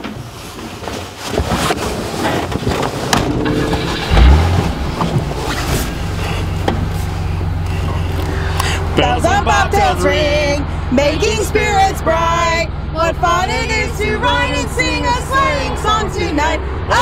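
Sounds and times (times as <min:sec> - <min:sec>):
road noise: 0:02.7 - 0:17.0
low thump: 0:03.2 - 0:07.5
rattles: 0:03.2 - 0:08.4
car engine running: 0:03.2 - 0:11.2.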